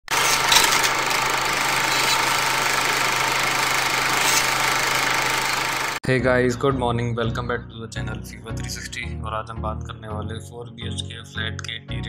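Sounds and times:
machine humming: 0.0 - 6.0.

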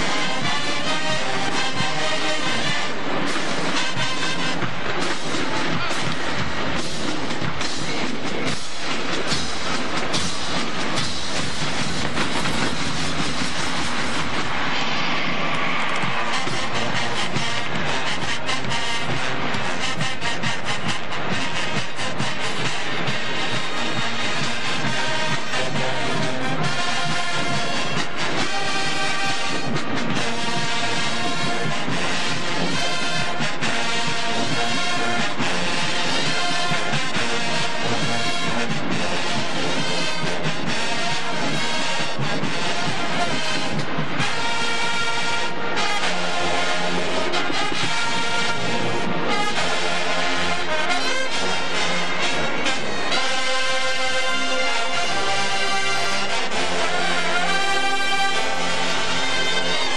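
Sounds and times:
brass section playing chords: 0.0 - 59.9
drumline beating a cadence: 0.0 - 59.9.

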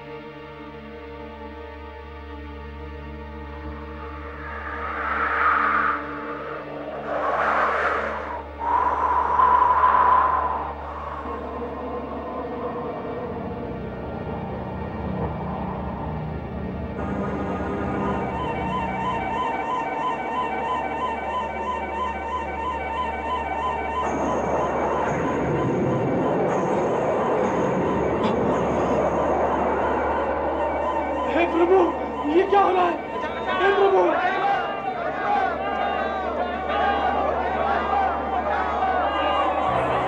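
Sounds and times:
low drone: 0.0 - 35.2
whooshing swell: 3.1 - 33.7
strong wind rushing: 3.3 - 35.6.

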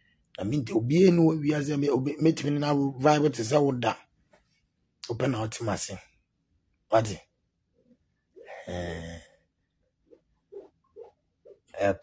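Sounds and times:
man sighing: 8.4 - 9.4.

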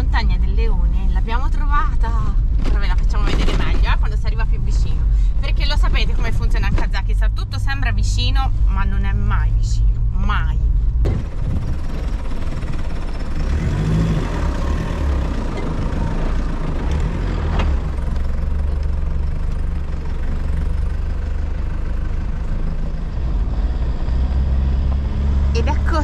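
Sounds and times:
car engine drone: 0.0 - 26.0
tyre and road rumble: 0.0 - 26.0.

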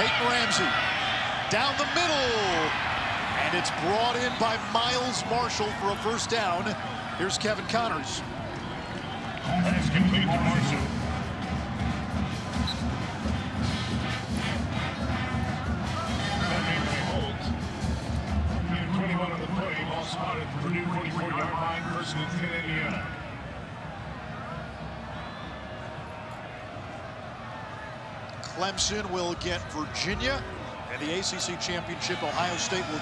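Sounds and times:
faint crowd noise: 0.0 - 33.0
man talking: 3.4 - 8.2, 28.5 - 33.0
music: 9.4 - 21.3.

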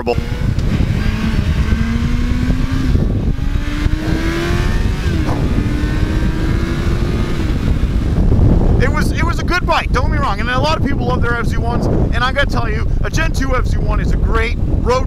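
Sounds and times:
motorcycle engine accelerating: 0.0 - 9.8
wind rumble on microphone: 0.0 - 15.0.

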